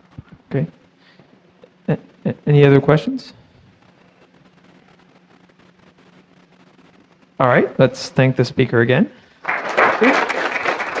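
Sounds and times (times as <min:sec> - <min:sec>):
audience applauding: 0:09.4 - 0:11.0.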